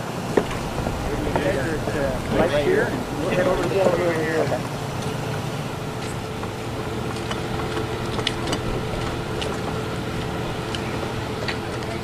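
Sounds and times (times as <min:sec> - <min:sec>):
engine-like drone with tones: 0:00.0 - 0:12.0
outdoor noise: 0:00.0 - 0:12.0.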